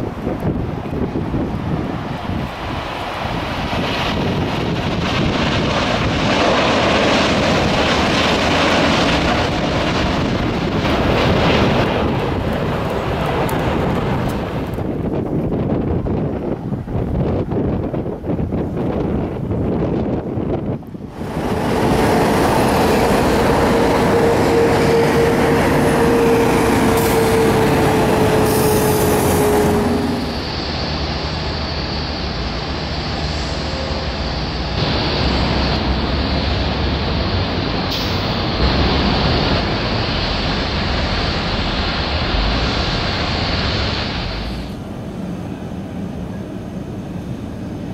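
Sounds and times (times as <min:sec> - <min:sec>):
dull airport hum: 0:00.0 - 0:47.9
heavy road traffic: 0:00.0 - 0:47.9
jet engines roaring: 0:00.0 - 0:47.9
steady whine: 0:21.0 - 0:47.9.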